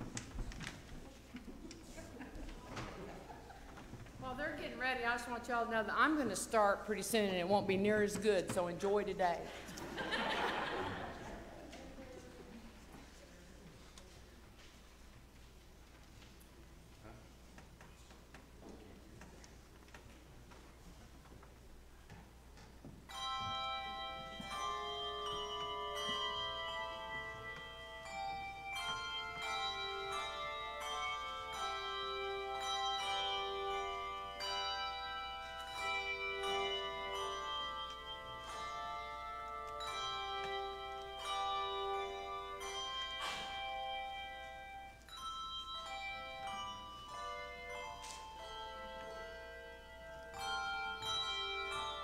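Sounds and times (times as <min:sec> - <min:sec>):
handbell choir ringing: 0:23.1 - 0:52.0.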